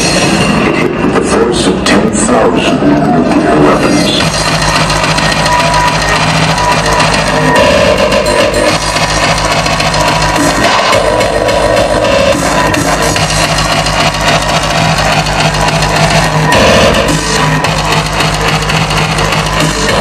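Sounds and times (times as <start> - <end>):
hardcore electronic dance music: 0.0 - 20.0
heavy kick drum: 4.2 - 20.0.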